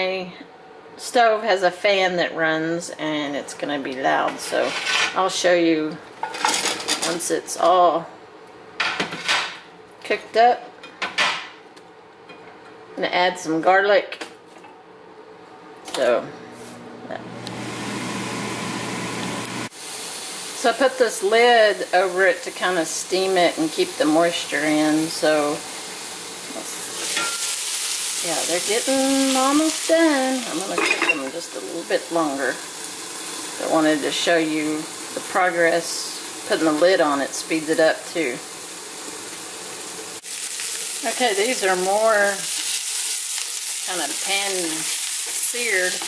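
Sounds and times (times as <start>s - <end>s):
range hood fan whirring: 0.0s - 46.0s
vegetables sizzling in a frying pan: 17.4s - 46.0s.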